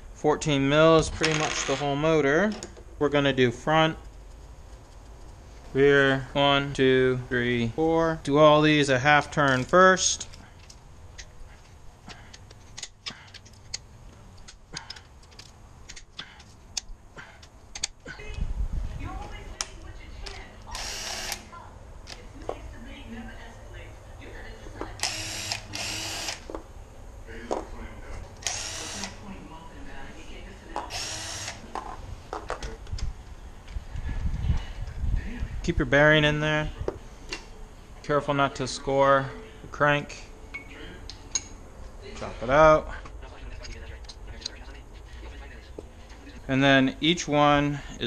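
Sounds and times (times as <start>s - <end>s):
cordless ratchet whirring: 20.7s - 21.5s, 25.0s - 26.5s, 28.4s - 29.2s, 30.9s - 31.6s.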